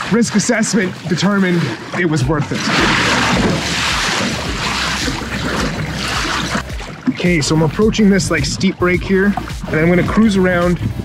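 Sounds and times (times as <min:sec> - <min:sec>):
water rushing along hull: 0:00.0 - 0:11.0
low rumble: 0:02.2 - 0:11.0.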